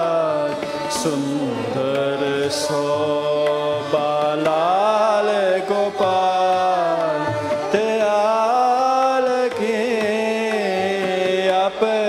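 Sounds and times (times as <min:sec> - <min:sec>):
bowed string instruments: 0:00.0 - 0:12.0
person singing melody: 0:00.0 - 0:12.0
tabla strokes: 0:00.0 - 0:12.0
tanpura drone: 0:00.0 - 0:12.0.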